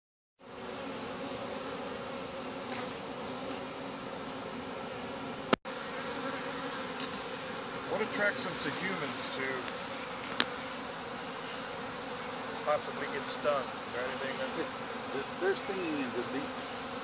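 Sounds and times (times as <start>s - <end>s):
bee swarm humming: 0.4s - 17.0s.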